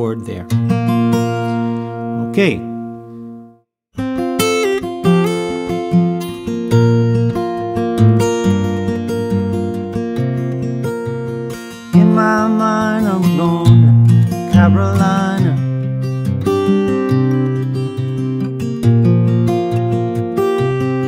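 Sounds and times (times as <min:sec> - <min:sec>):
fingerpicked acoustic guitar: 0:00.0 - 0:21.0.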